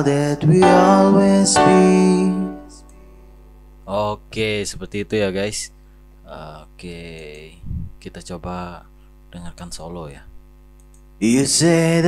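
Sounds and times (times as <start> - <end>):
grand piano: 0.0 - 2.8
person singing with reverb: 0.0 - 2.8, 11.2 - 12.0.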